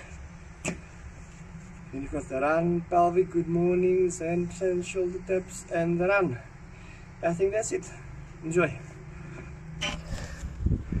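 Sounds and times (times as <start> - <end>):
steady low hum: 0.0 - 11.0
phone handling scrape: 9.8 - 10.5.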